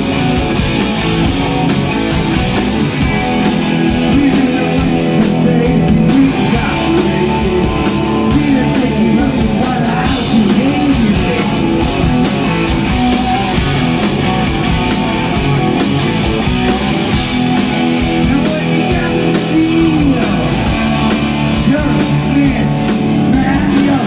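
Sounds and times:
bass guitar: 0:00.0 - 0:24.0
distorted electric guitar: 0:00.0 - 0:24.0
drum kit: 0:00.0 - 0:24.0.

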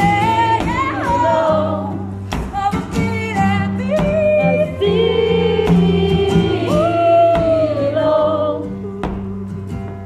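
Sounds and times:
woman singing: 0:00.0 - 0:09.9
amplified acoustic guitar: 0:00.0 - 0:10.0
bass line: 0:00.0 - 0:10.0
percussive beat: 0:00.0 - 0:10.0.

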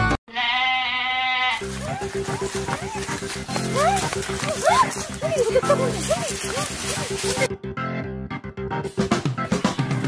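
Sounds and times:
quavering bleat-like cry: 0:00.3 - 0:02.4
banjo music: 0:01.6 - 0:07.5
music: 0:01.6 - 0:10.0.

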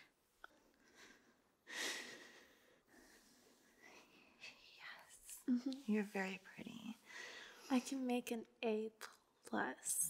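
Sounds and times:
woman whispering: 0:04.4 - 0:07.0.

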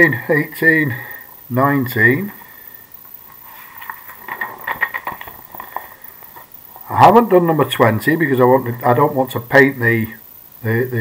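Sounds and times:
paper sheets rustling: 0:03.2 - 0:06.5.

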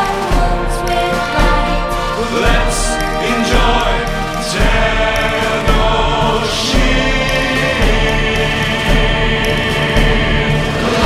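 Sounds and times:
choir-like singing: 0:00.0 - 0:11.0
deep bass beat: 0:00.0 - 0:11.0.

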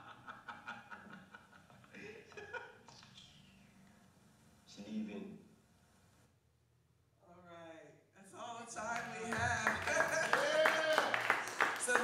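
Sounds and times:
man laughing: 0:00.0 - 0:02.8.

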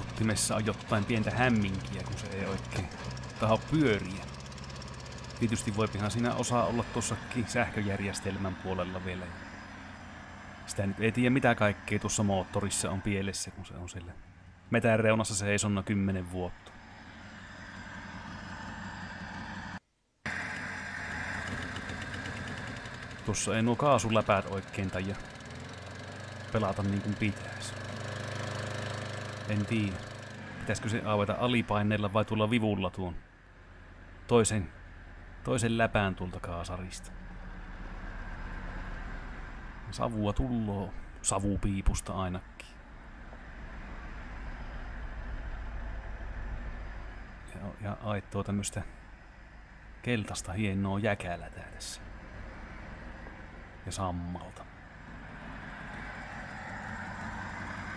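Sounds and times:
car engine idling: 0:00.0 - 0:14.7, 0:16.6 - 0:41.3, 0:42.4 - 0:50.6, 0:51.5 - 0:57.9.

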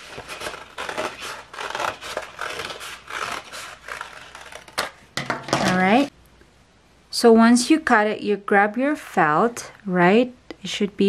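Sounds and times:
paper rustling: 0:00.0 - 0:05.0
woman's voice: 0:05.6 - 0:06.1, 0:07.1 - 0:11.0.

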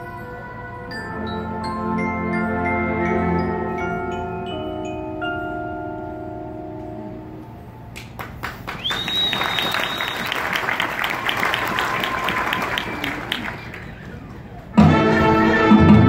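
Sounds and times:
marimba and glockenspiel chord: 0:00.0 - 0:07.7
audience applause: 0:08.2 - 0:14.6
high whistle from crowd: 0:08.7 - 0:14.3.

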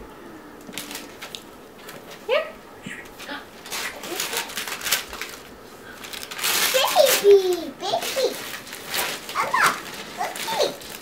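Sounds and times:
wrapping paper crinkling and tearing: 0:00.7 - 0:01.4, 0:03.6 - 0:11.0.

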